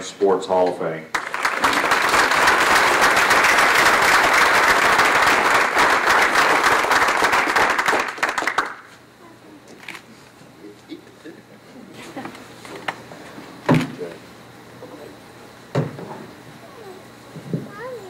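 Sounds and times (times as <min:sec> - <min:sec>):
audience applauding: 0:01.1 - 0:08.9.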